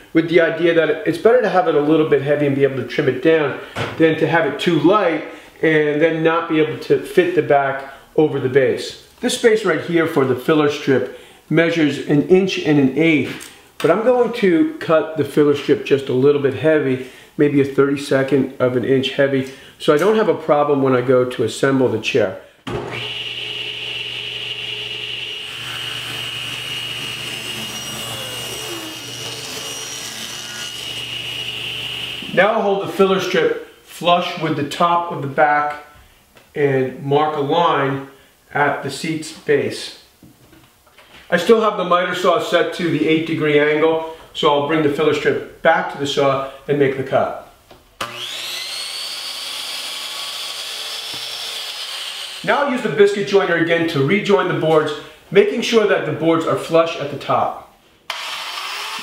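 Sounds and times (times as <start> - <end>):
saw blade cutting wood: 22.7 - 32.2, 48.0 - 52.5, 58.1 - 59.0
table saw whining: 22.7 - 32.4, 48.0 - 52.8, 58.1 - 59.0.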